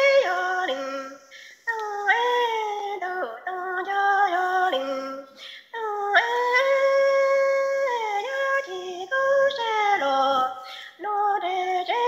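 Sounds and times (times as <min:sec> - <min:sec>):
breath: 0:01.3 - 0:01.7, 0:05.3 - 0:05.8, 0:10.6 - 0:11.0.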